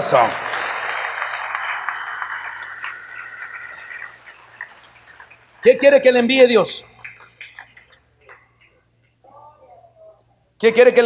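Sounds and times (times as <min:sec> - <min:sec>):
congregation applauding: 0:00.0 - 0:08.0.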